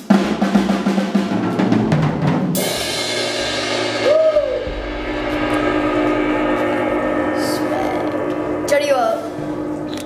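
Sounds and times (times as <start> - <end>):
cymbals ringing: 2.6 - 10.0
short rising falling hoot: 3.9 - 8.6.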